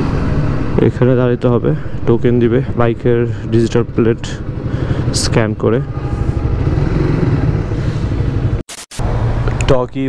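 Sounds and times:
motorcycle engine running at low revs: 5.8 - 7.8.

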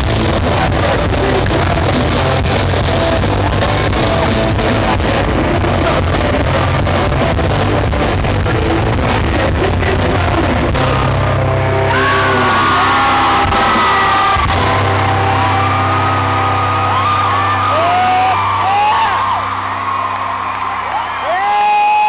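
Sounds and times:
rock band chord ringing: 0.0 - 21.6
crowd whooping and yelling: 11.0 - 22.0.

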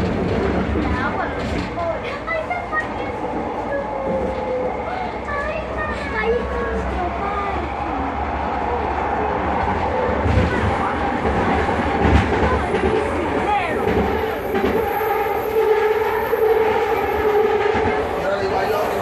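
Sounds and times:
wheel and track rumble: 0.0 - 19.0.

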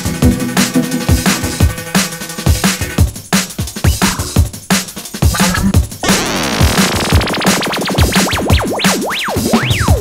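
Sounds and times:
drum machine beat: 0.1 - 10.0
zigzagging synth sweep: 5.3 - 10.0.

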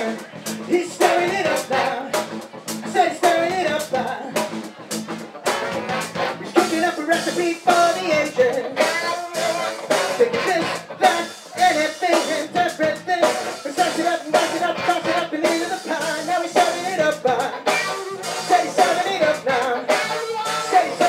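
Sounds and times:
funk rock band playing: 0.0 - 21.0.

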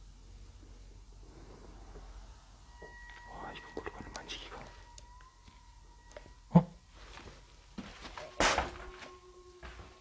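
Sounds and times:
faint steady high tone: 0.3 - 10.0
soft whispering: 1.2 - 5.3.

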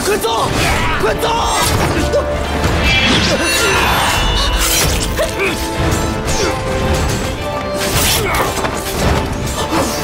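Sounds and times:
dramatic background music: 0.0 - 10.0
swords clashing: 2.9 - 5.6.

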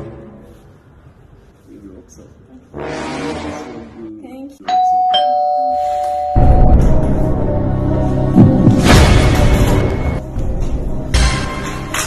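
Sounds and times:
doorbell ding-dong chime: 4.6 - 6.7
loud music: 6.5 - 12.0.

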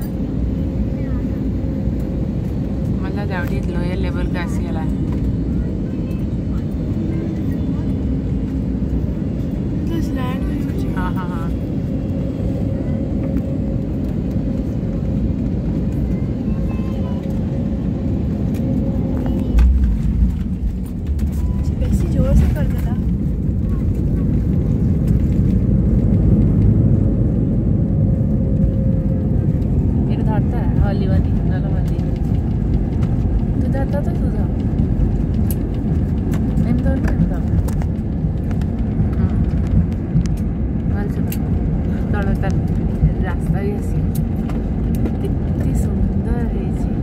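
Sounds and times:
airliner cabin rumble: 0.0 - 47.0.

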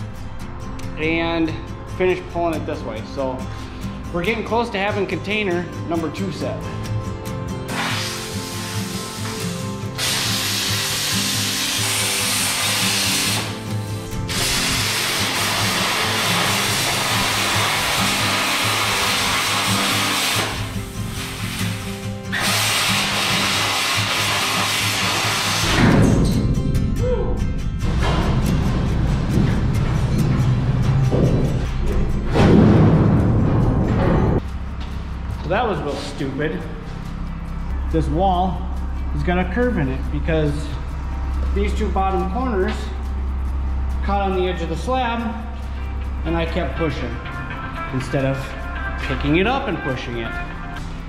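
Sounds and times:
plasma cutter hissing: 7.7 - 26.0
heavy low rumble: 26.0 - 49.2
loud knocks: 31.1 - 34.4.

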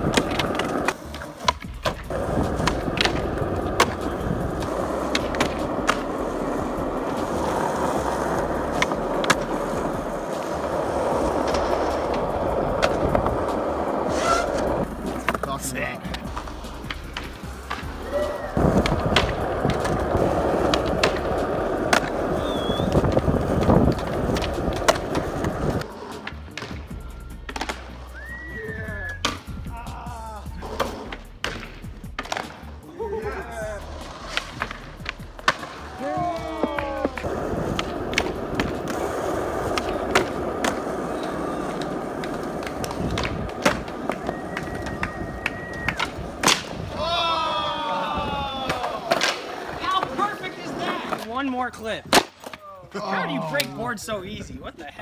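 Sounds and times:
skateboard clacks: 0.0 - 29.7, 30.6 - 32.8, 33.9 - 52.6
skateboard wheels rolling on asphalt: 0.0 - 29.7, 30.6 - 55.0.

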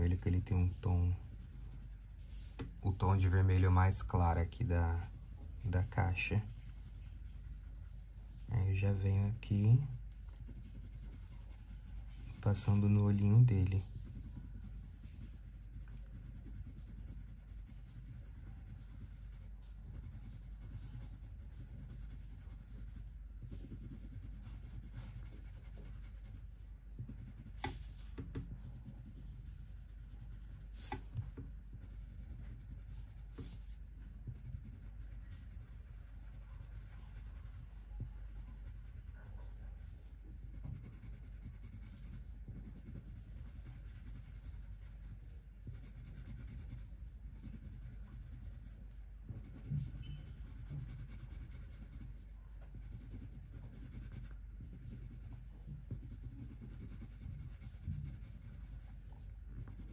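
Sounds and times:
colored pencil scratching paper: 0.0 - 59.9.

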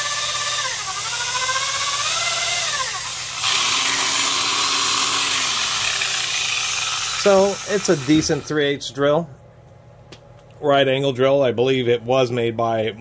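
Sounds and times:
electric drill motor whine: 0.0 - 8.5.

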